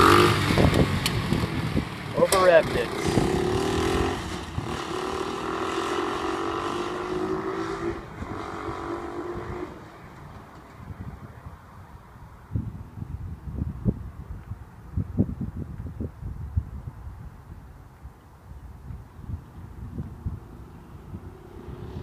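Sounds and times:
go-kart engine at high revs: 0.0 - 9.9
wind buffeting microphone: 0.0 - 22.0.

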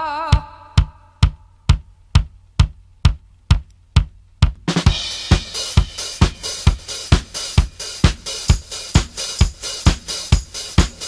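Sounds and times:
bass drum steady beat: 0.0 - 11.0.

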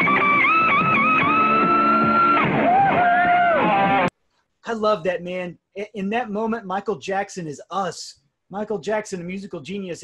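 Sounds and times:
electric guitar solo: 0.0 - 4.1
rock band playing: 0.0 - 4.1.

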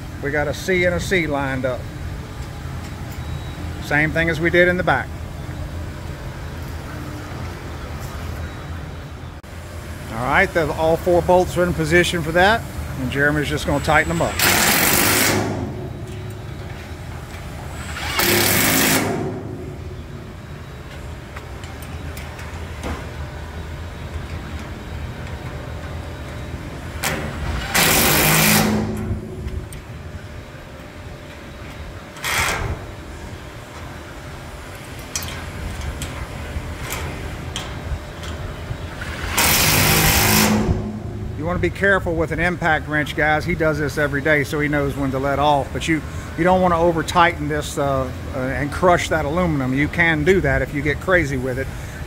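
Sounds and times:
steady low hum: 0.0 - 52.0
impact wrench bursts: 13.1 - 16.7, 17.5 - 19.9, 27.0 - 29.3, 39.0 - 41.4.

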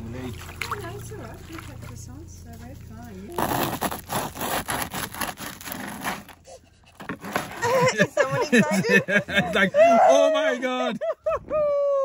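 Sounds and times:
bread knife sawing crust: 3.4 - 6.4.

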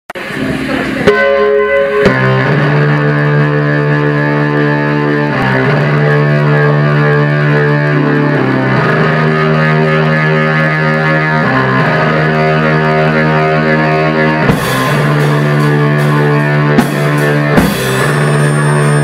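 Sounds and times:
live band music: 0.2 - 19.0
synthesizer keyboard chords: 0.2 - 19.0.

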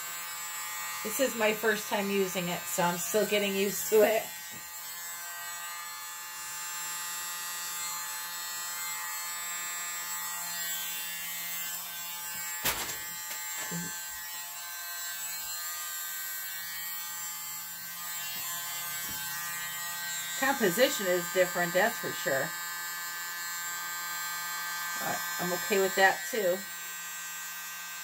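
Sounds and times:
mini blower motor whine: 0.0 - 16.0, 16.6 - 28.0.

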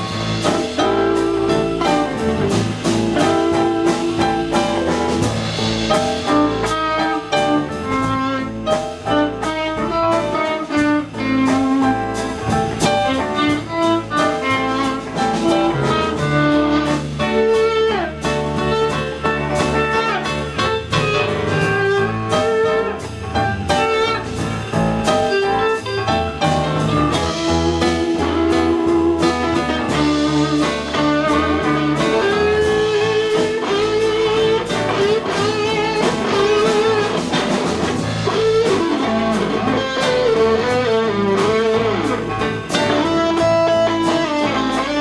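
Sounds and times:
rock band playing instrumental: 0.0 - 45.0.

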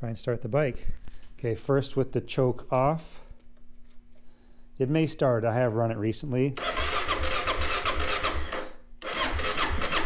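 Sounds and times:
electric starter cranking engine: 6.6 - 10.0.

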